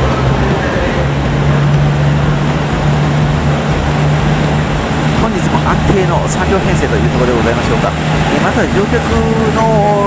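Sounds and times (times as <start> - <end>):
diesel train engine humming: 0.0 - 10.0.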